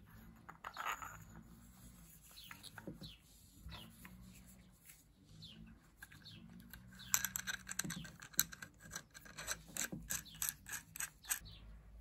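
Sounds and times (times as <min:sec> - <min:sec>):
small metal parts clicking and scraping: 0:00.0 - 0:03.0, 0:05.8 - 0:11.4
bird chirping faintly: 0:10.1 - 0:12.0.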